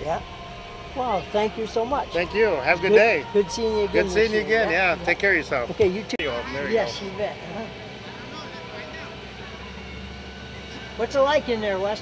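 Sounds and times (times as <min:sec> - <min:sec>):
engine idling: 0:00.0 - 0:12.0
faint voices: 0:00.0 - 0:12.0.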